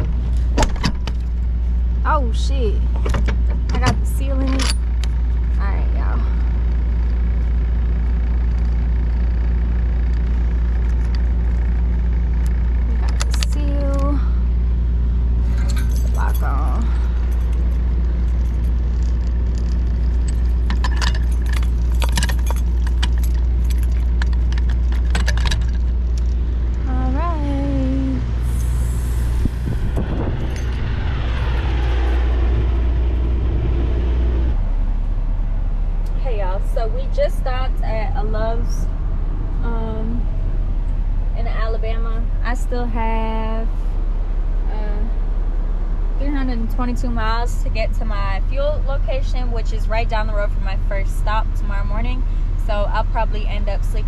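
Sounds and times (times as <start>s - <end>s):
low engine drone: 0.0s - 54.0s
metal lock rod and padlock rattling: 3.0s - 5.1s, 15.5s - 26.4s
air hiss: 28.4s - 29.7s.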